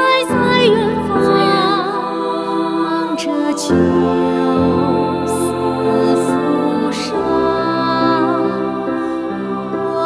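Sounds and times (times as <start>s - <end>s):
person singing with vibrato: 0.0s - 10.0s
sustained accompaniment chords: 0.4s - 10.0s.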